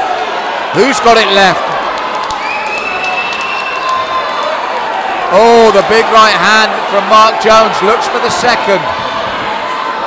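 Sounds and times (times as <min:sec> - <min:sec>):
crowd shouting and cheering: 0:00.0 - 0:10.0
high steady whistle: 0:02.4 - 0:04.0.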